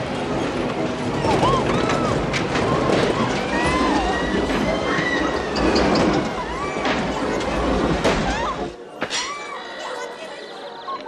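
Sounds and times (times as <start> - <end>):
busy ambient background: 0.0 - 11.0.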